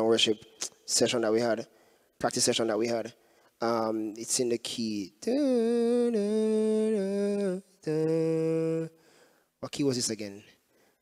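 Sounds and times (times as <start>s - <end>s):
man humming: 5.3s - 8.9s.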